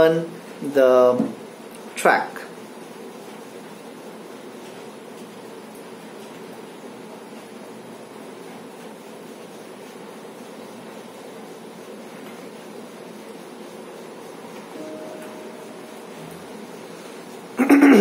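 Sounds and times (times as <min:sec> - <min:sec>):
ceiling fan hum and whoosh: 0:00.0 - 0:18.0
room hiss: 0:00.0 - 0:18.0.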